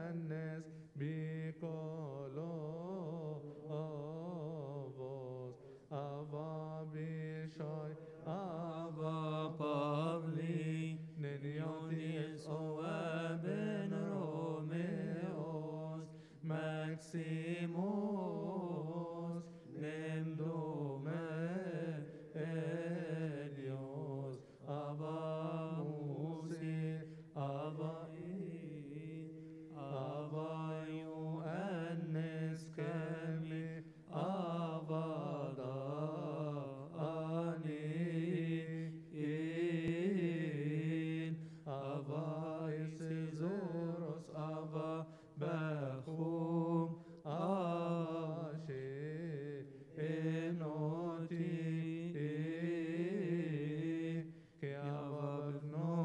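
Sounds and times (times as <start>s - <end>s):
man chanting a hymn: 0.0s - 56.0s.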